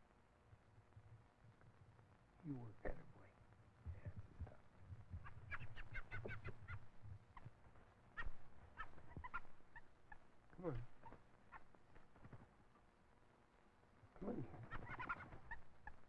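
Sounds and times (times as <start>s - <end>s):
man speaking softly: 2.4s - 4.6s, 10.6s - 10.9s, 14.2s - 14.7s
bird chirping: 5.1s - 12.9s, 14.1s - 16.0s.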